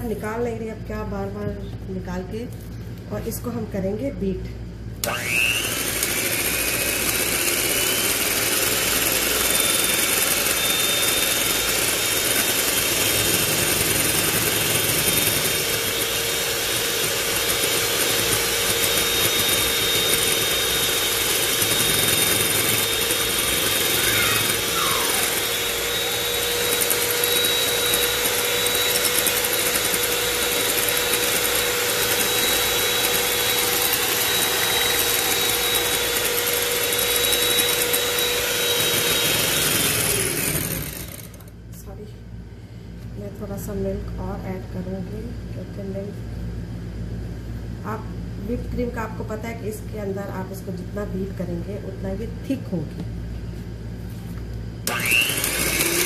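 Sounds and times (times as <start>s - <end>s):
electric hand mixer whine: 5.0s - 41.6s, 54.8s - 56.0s.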